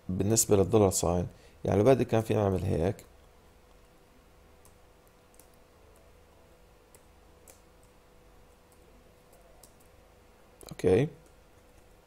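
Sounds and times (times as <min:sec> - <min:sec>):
man speaking: 0:00.1 - 0:03.0, 0:10.6 - 0:11.2
keyboard keys clicking: 0:04.6 - 0:06.1, 0:08.7 - 0:10.0.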